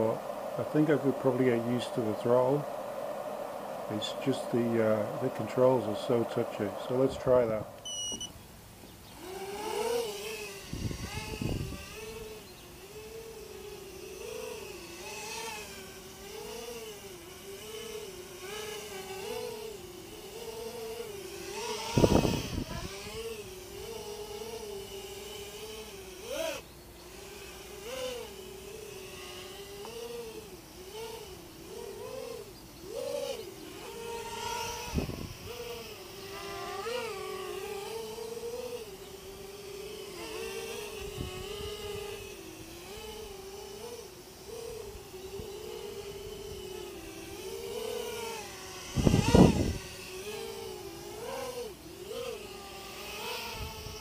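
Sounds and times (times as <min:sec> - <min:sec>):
low rumbling air noise: 0:00.0 - 0:09.7, 0:10.3 - 0:13.6, 0:34.2 - 0:36.2
drone motors whining: 0:00.0 - 0:54.0.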